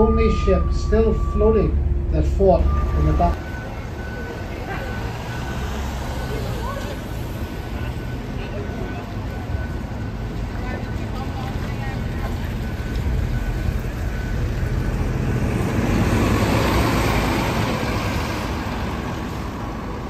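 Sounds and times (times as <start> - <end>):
bus driving past: 0.0 - 20.0.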